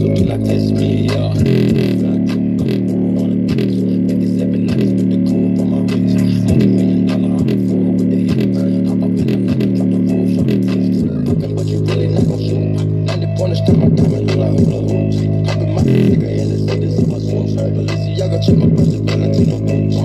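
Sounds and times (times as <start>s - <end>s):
deep bass notes: 0.0s - 20.0s
hi-hat ticks: 0.1s - 20.0s.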